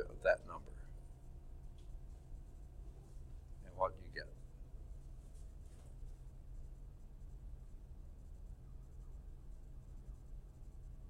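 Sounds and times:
faint scratching: 0:00.0 - 0:11.0.

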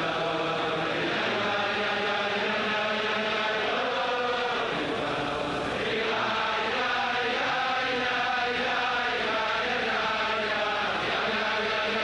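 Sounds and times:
crowd of men singing: 0:00.0 - 0:12.0.

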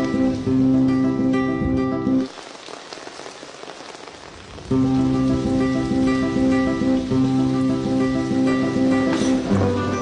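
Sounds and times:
music: 0:00.0 - 0:02.3, 0:04.7 - 0:10.0
steady rain falling: 0:00.0 - 0:10.0.

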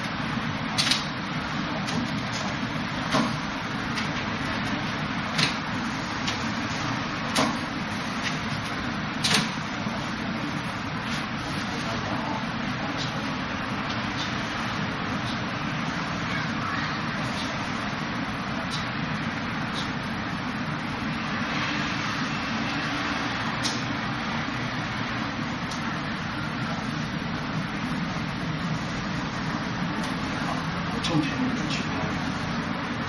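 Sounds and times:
steady rushing noise: 0:00.0 - 0:33.0.

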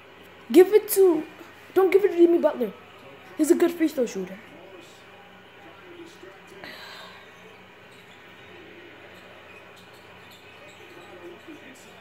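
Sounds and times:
faint voice from tv: 0:00.0 - 0:12.0
low room hum: 0:00.0 - 0:12.0.

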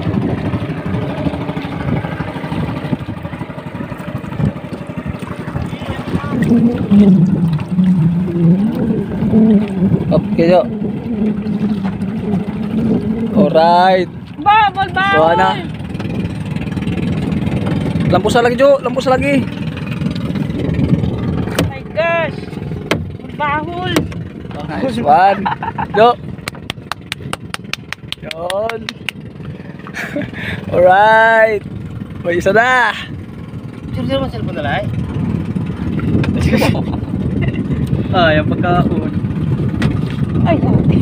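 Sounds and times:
boat engine ticking: 0:00.0 - 0:41.0
man humming: 0:06.3 - 0:13.5.

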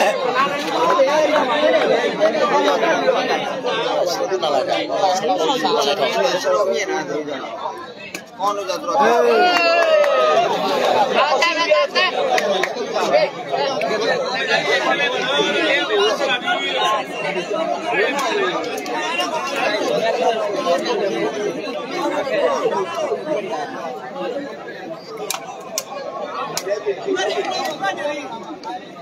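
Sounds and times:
crowd chattering: 0:00.0 - 0:29.0.

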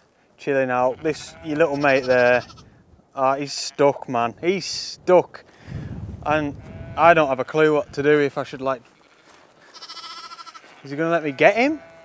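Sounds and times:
lamb bleating: 0:00.8 - 0:02.7, 0:06.5 - 0:08.1, 0:08.8 - 0:12.0.

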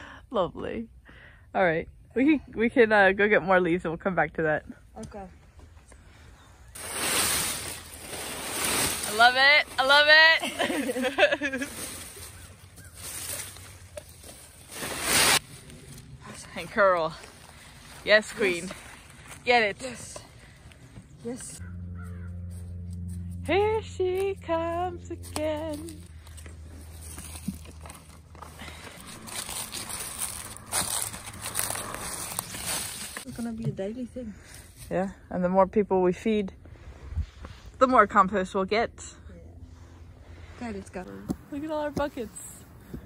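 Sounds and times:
low steady hum: 0:00.0 - 0:43.0
rake scraping through dry leaves: 0:06.7 - 0:19.5, 0:22.0 - 0:33.4.

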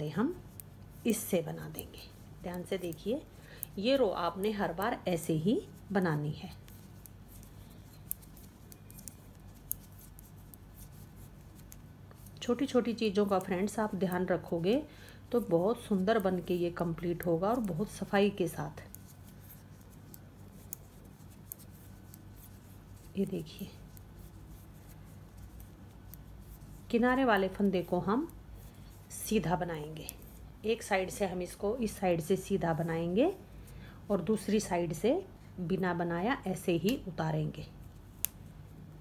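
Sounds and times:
knitting needles clicking: 0:00.5 - 0:05.1, 0:06.4 - 0:14.7, 0:15.4 - 0:28.7.

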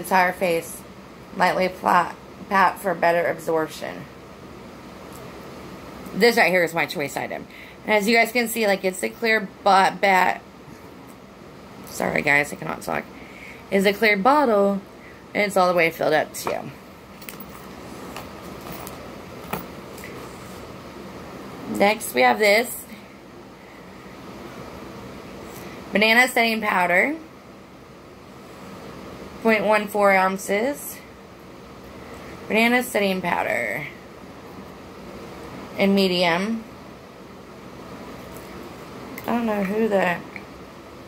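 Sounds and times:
steady background hum: 0:00.0 - 0:41.0.

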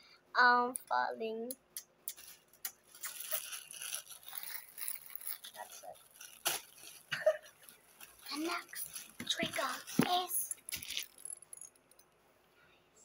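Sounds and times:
plastic packet crinkling: 0:02.1 - 0:11.5.

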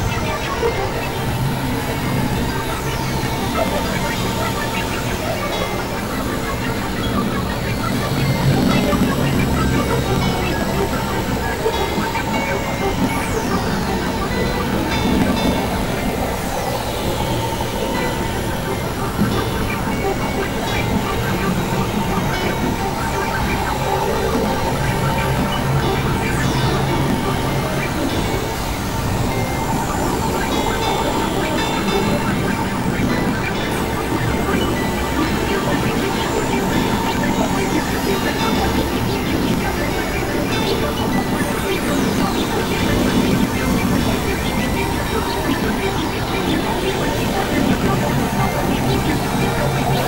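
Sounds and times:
noise and drones: 0:00.0 - 0:50.0.

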